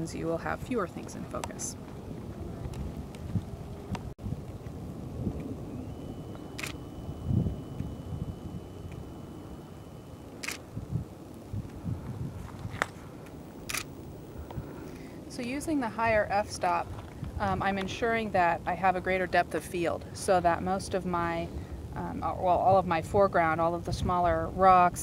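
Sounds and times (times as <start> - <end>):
wind rumbling on microphone: 0.0 - 25.0
camera shutter clicks: 6.6 - 6.8, 10.4 - 10.6, 13.6 - 14.0.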